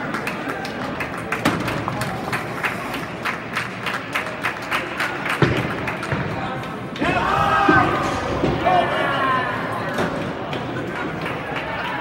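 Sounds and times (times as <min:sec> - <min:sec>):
background hubbub: 0:00.0 - 0:12.0.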